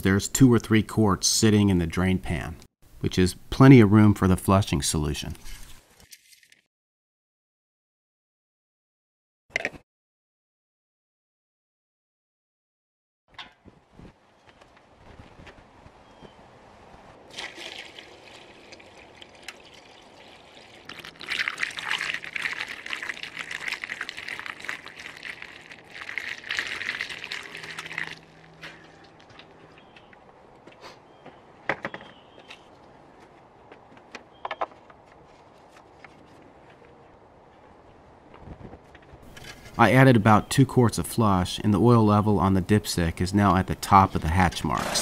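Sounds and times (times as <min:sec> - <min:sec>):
liquid pouring through funnel: 0:17.3 - 0:29.0.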